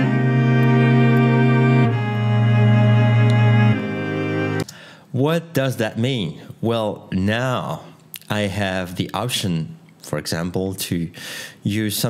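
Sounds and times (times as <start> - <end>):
sustained string chords: 0.0 - 4.7.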